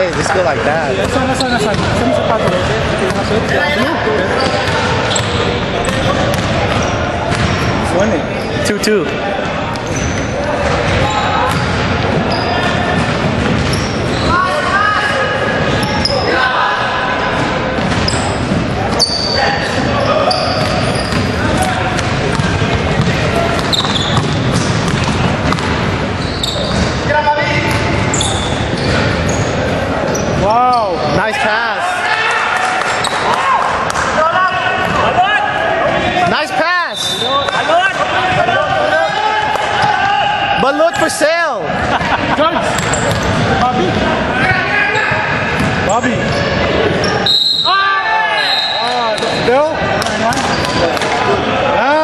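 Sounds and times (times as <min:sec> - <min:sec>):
sneakers squeaking on floor: 0:00.0 - 0:16.5, 0:17.3 - 0:31.2, 0:32.8 - 0:33.4, 0:36.4 - 0:41.1, 0:42.6 - 0:51.2
players calling out: 0:00.0 - 0:52.0.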